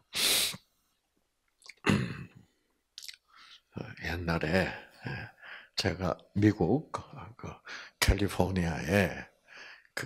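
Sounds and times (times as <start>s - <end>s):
person speaking: 3.0s - 9.3s
breath into microphone: 9.5s - 9.9s.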